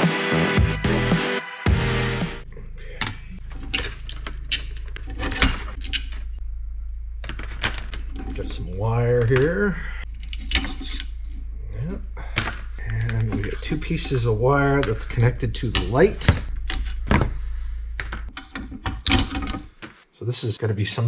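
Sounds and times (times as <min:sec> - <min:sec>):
steady low hum: 0:02.4 - 0:19.7.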